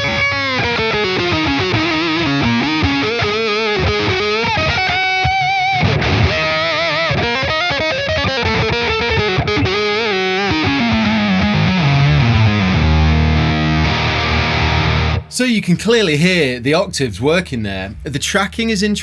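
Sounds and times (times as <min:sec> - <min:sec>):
fuzzy electric guitar lead: 0:00.0 - 0:15.4.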